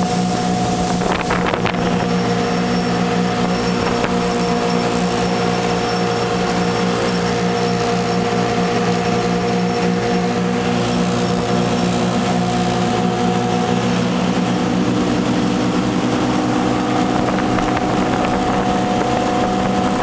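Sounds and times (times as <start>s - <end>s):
boat engine droning: 0.0s - 20.0s
rush of wind and water: 0.0s - 20.0s.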